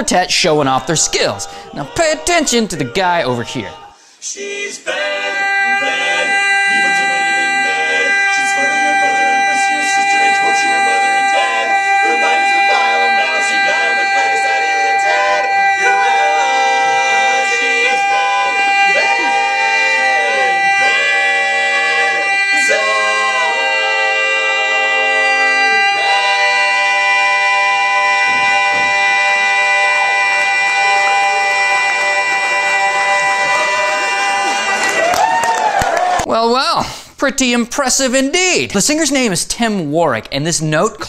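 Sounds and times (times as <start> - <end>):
barbershop quartet singing: 0.0 - 35.8.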